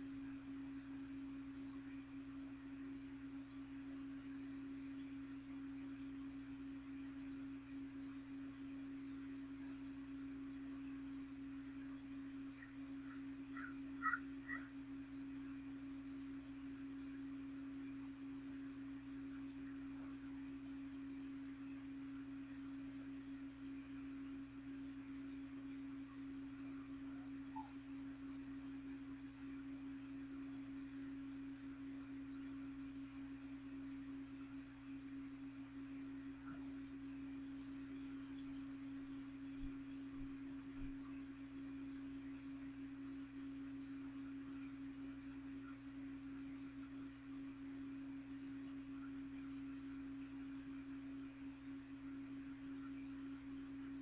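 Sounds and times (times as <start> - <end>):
box fan humming: 0.0 - 54.0.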